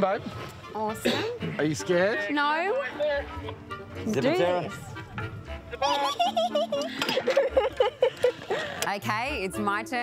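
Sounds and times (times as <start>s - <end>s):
woman laughing nervously: 5.8s - 8.8s.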